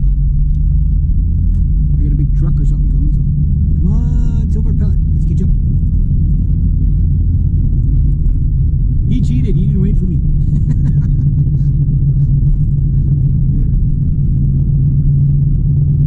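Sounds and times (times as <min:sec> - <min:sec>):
engine and road rumble in car: 0:00.0 - 0:16.0.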